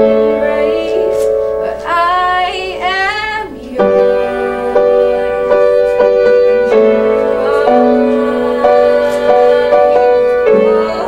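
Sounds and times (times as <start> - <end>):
girl singing gospel song: 0.0 - 11.0
piano chords: 0.0 - 11.0.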